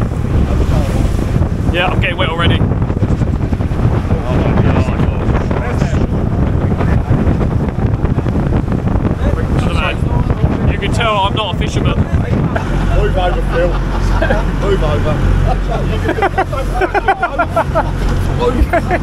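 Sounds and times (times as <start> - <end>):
boat pounding through waves: 0.0 - 19.0
water rushing and splashing: 0.0 - 19.0
wind buffeting microphone: 0.0 - 19.0
voices and laughter: 11.6 - 19.0.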